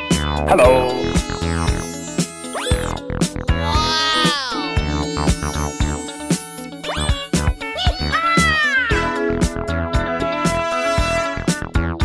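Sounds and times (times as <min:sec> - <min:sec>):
cartoon sound effect: 0:00.5 - 0:01.2
upbeat background music: 0:00.5 - 0:10.2.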